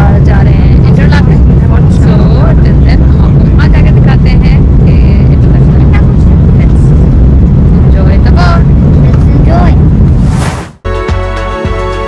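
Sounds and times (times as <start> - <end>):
voices: 0.0 - 7.0
boat engine rumble: 0.0 - 10.4.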